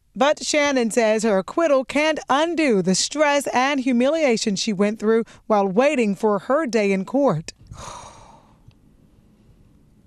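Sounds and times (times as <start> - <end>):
woman sighing: 7.7 - 8.6.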